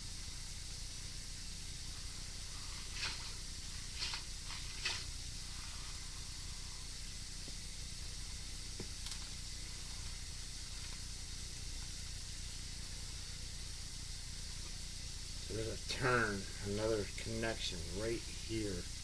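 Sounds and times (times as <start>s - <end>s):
low hum: 0.0s - 19.0s
steady hiss: 0.0s - 19.0s.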